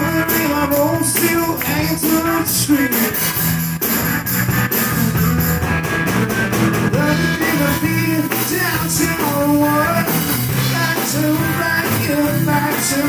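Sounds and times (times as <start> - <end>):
person singing: 0.0 - 3.4, 6.9 - 13.0
bass guitar: 0.0 - 13.0
distorted electric guitar: 0.0 - 13.0
drum kit beat: 0.0 - 13.0.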